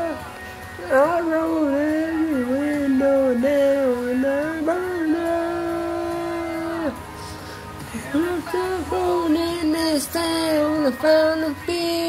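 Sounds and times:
man singing slow melody: 0:00.0 - 0:07.1, 0:07.8 - 0:12.0.

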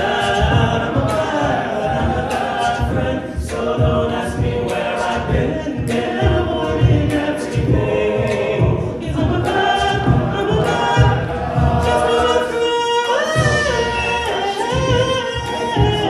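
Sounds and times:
men singing in harmony: 0:00.0 - 0:16.0
vocal percussion beat: 0:00.0 - 0:16.0.

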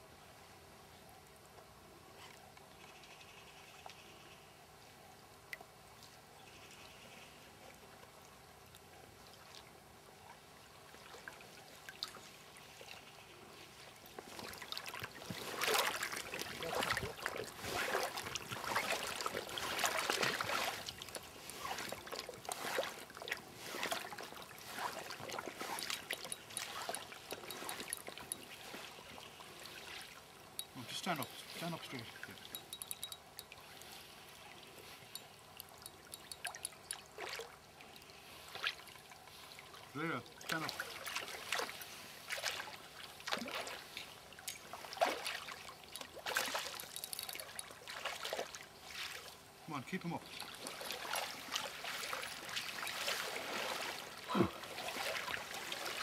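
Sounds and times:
faint river flowing: 0:00.0 - 0:56.0
water splashing and sloshing: 0:07.7 - 0:56.0.

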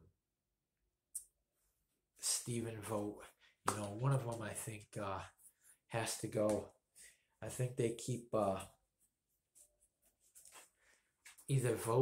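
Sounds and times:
hand rustling against clothing: 0:08.9 - 0:11.5.

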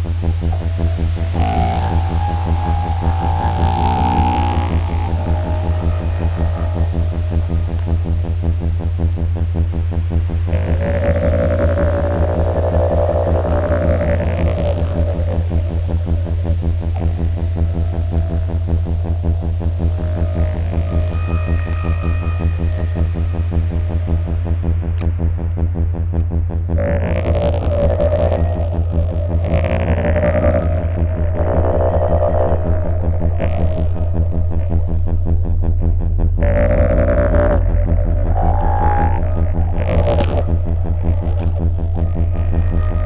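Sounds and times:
pulsing electronic drone: 0:00.0 - 0:43.0
sweeping phaser bands: 0:00.0 - 0:43.0.

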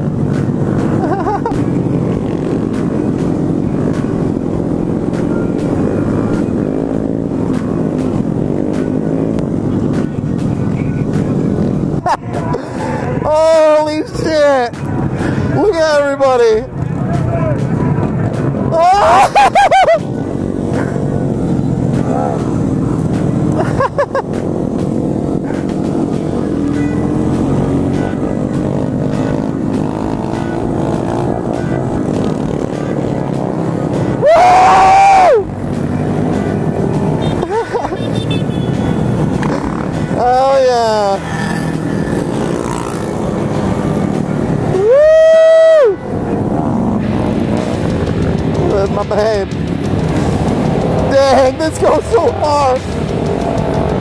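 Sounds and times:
motorcycle engines running: 0:00.0 - 0:54.0
loud drawn-out whoops: 0:34.2 - 0:35.6, 0:44.7 - 0:46.1.

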